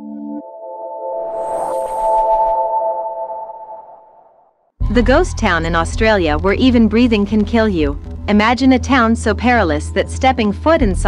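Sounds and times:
held synthesizer chord: 0:00.0 - 0:04.5
whoosh: 0:01.2 - 0:04.3.

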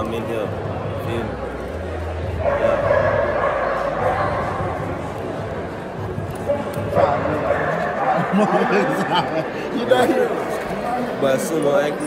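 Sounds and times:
dog barking: 0:02.4 - 0:04.7.

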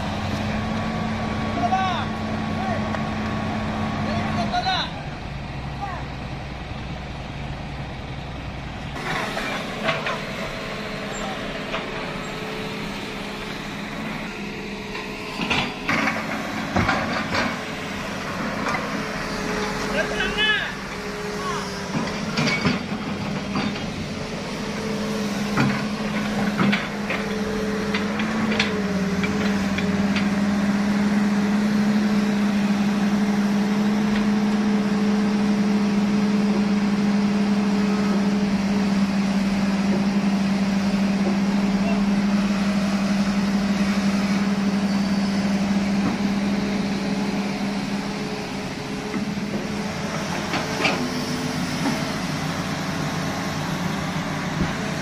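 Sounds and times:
diesel machinery engine droning: 0:00.0 - 0:55.0.

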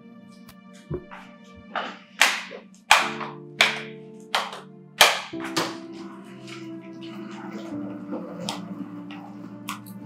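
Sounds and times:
slow handclapping: 0:02.2 - 0:05.8.

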